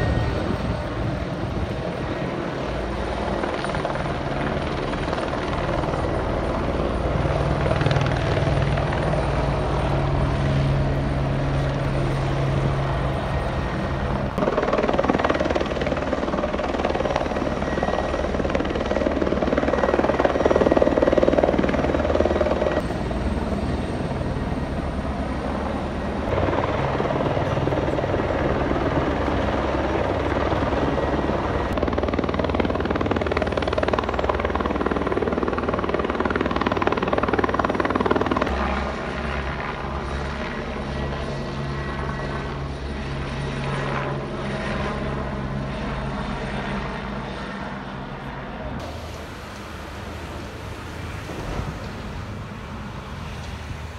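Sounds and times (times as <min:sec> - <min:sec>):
helicopter rotor thudding: 0:14.1 - 0:23.1.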